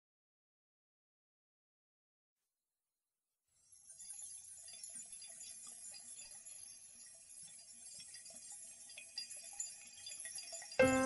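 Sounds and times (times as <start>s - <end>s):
small chimes tinkling: 3.7s - 11.0s.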